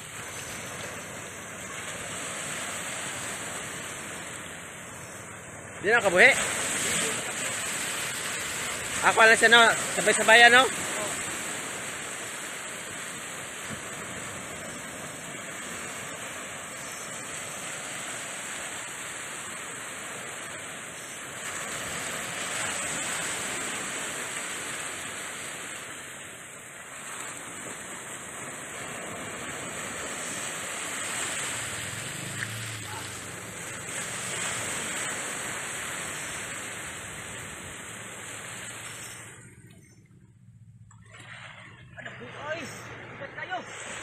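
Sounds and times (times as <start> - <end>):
ocean surf breaking: 0.0 - 40.0, 40.9 - 44.0.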